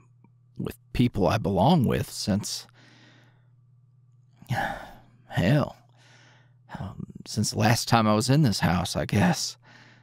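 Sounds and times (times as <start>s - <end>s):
faint low hum: 0.0s - 10.0s
man sighing: 4.5s - 5.0s.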